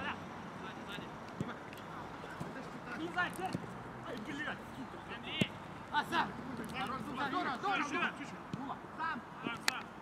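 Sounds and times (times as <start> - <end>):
players calling and shouting: 0.0 - 10.0.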